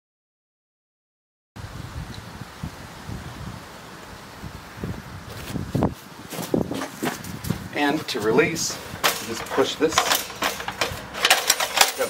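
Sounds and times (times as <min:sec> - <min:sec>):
sharp metal clicks: 0:09.0 - 0:12.0.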